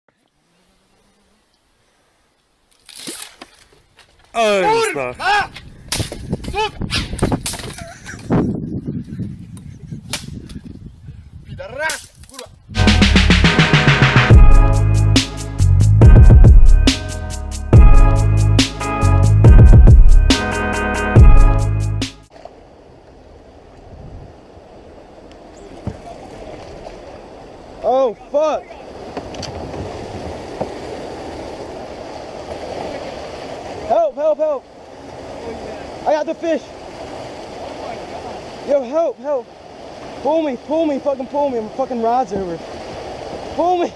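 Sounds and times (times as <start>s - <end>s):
electronic music with a beat: 12.8s - 22.3s
water churning around a kayak: 22.3s - 43.9s.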